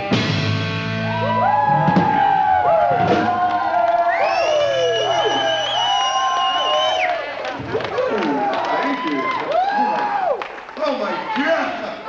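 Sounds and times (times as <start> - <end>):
live rock band playing: 0.0 - 3.4
crowd cheering: 0.0 - 12.0.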